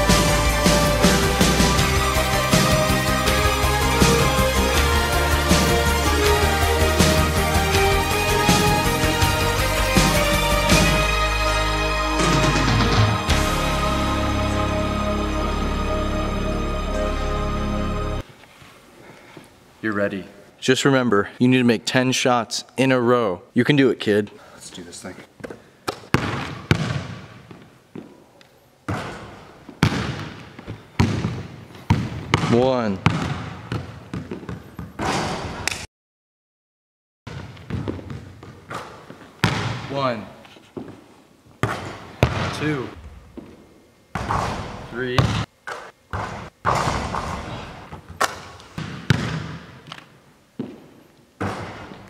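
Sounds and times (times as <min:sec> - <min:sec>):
basketball bouncing on hardwood floor: 0:26.1 - 0:28.1, 0:28.9 - 0:35.2, 0:37.3 - 0:39.9, 0:41.6 - 0:42.6, 0:43.3 - 0:45.4, 0:46.1 - 0:48.2, 0:48.8 - 0:50.0, 0:51.4 - 0:52.0.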